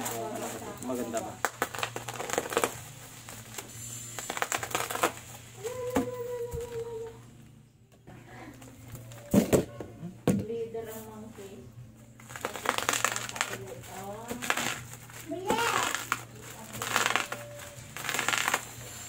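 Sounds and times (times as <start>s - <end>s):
bubble wrap crinkling: 0.0s - 7.2s, 8.6s - 9.4s, 12.0s - 19.0s.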